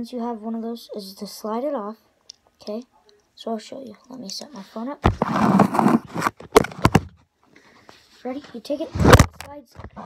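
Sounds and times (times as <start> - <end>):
phone handling knocks and rubs: 5.0 - 7.2.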